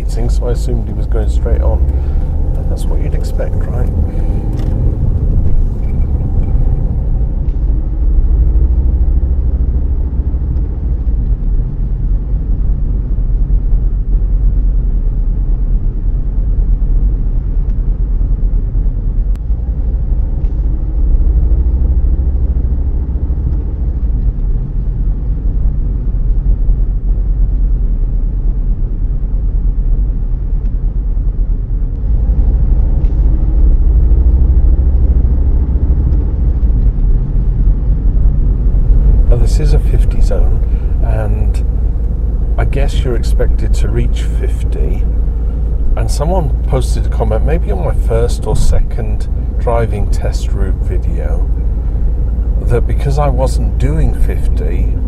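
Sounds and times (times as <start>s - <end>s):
faint engine tone rising: 0.0s - 15.4s, 19.2s - 55.0s
car tyre and engine rumble: 0.0s - 55.0s.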